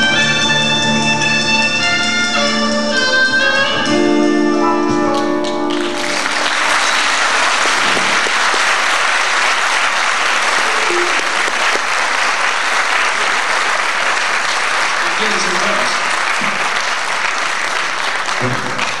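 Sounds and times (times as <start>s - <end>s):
large audience applauding: 5.1s - 19.0s.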